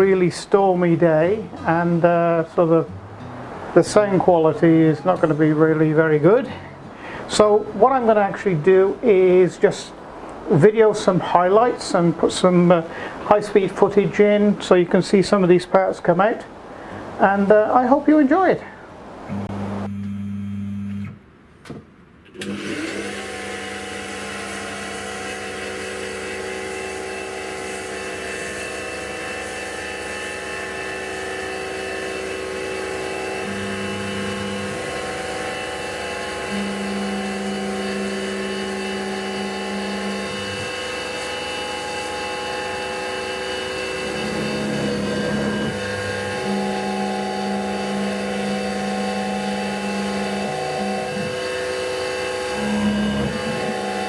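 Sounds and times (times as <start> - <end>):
mill spindle whine: 22.4 - 54.0
low machine hum: 31.6 - 54.0.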